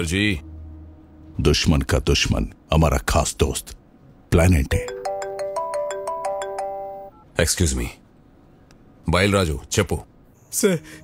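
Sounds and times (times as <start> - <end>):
mobile phone ringtone melody: 4.8 - 7.2.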